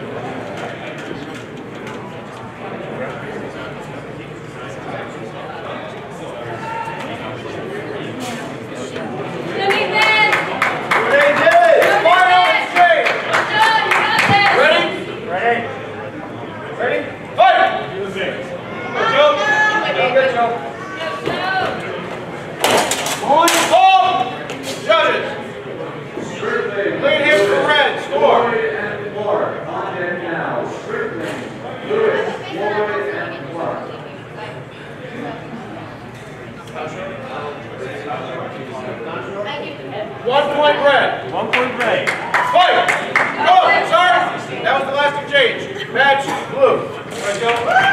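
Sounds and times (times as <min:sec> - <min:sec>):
indistinct chatter in large room: 0:00.0 - 0:47.9.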